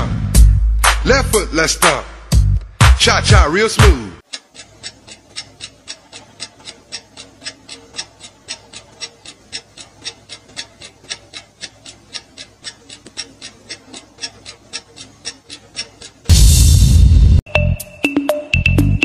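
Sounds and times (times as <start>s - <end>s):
clock-like timer ticks: 2.9s - 17.0s.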